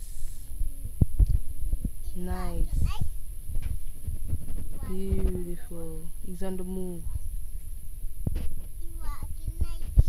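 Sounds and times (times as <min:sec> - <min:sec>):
low rumble on phone microphone: 0:00.0 - 0:10.0.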